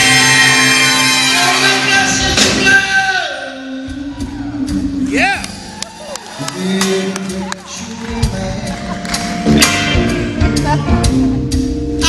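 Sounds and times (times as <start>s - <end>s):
rock band with horns playing blues: 0.0s - 12.0s
person singing: 6.3s - 11.4s.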